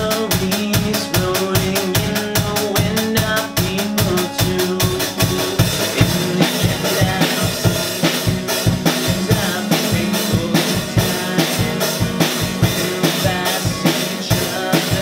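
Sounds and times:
acoustic guitar strumming: 0.0s - 15.0s
drum kit playing a beat: 0.0s - 15.0s.

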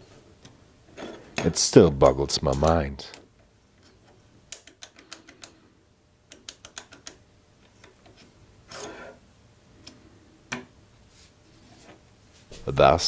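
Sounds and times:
small metal clicks: 4.5s - 5.6s, 6.3s - 8.2s.

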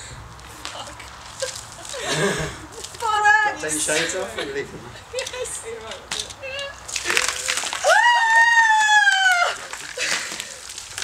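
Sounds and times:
water splashing: 6.4s - 11.0s
woman screaming: 7.5s - 9.8s.

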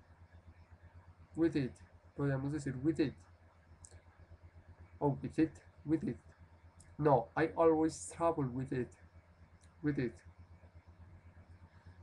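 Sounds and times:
low steady hum: 0.0s - 12.0s
person speaking: 1.4s - 3.2s, 5.0s - 6.2s, 6.8s - 9.0s, 9.7s - 10.2s
faint click: 3.8s - 4.1s.

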